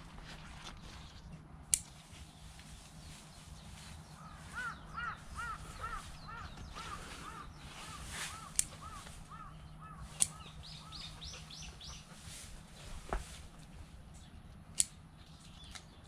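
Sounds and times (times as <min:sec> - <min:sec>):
bird calling arched notes: 0:03.8 - 0:12.2
sharp clicks: 0:14.7 - 0:15.0.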